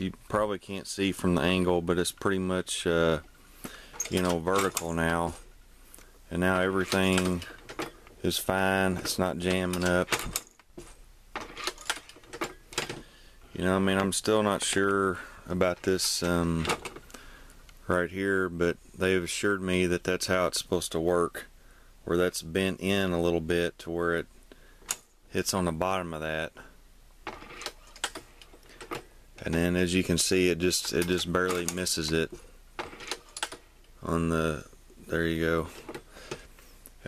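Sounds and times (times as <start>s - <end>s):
reloading press clicking and rattling: 3.9s - 5.0s, 6.8s - 8.1s, 8.9s - 13.0s
reloading press metallic clicks: 11.4s - 13.0s.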